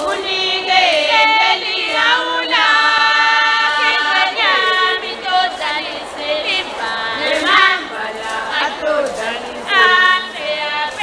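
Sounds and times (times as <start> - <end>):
women's chorus singing unaccompanied: 0.0 - 11.0.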